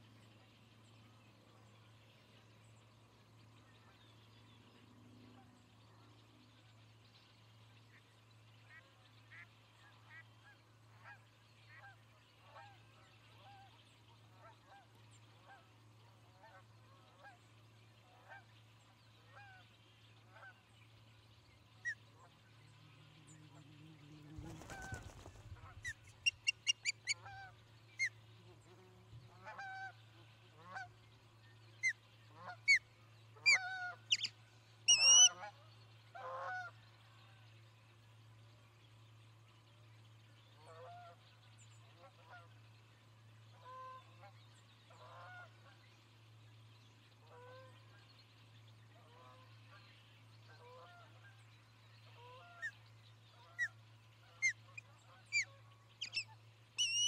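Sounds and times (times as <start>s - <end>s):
low electrical hum: 0.0s - 57.0s
soft low bird calls: 31.8s - 35.6s, 52.2s - 57.0s
sharp high bird calls: 33.5s - 34.3s, 34.9s - 35.4s, 55.3s - 57.0s.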